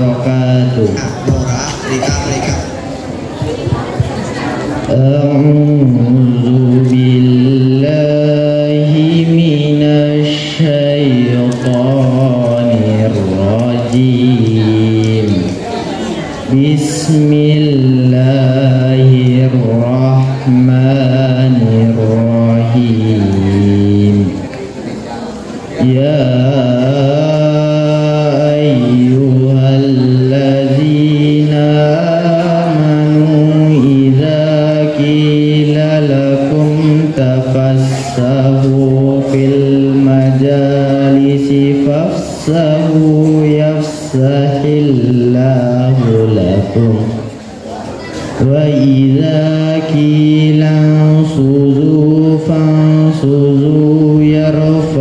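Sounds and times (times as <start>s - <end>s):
boy chanting melodic recitation: 0.0s - 55.0s.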